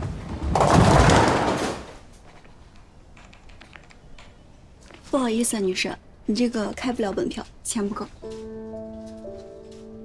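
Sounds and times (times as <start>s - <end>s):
bowling pins crashing: 0.0s - 2.0s.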